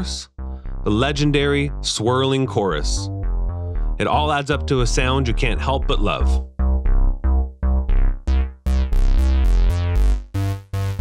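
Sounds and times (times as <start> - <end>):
synthesizer bass line: 0.0 - 11.0.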